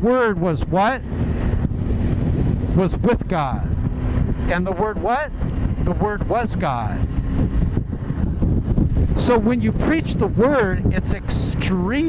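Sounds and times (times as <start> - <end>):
motorcycle engine drone: 0.0 - 12.0
wind and road noise: 0.0 - 12.0.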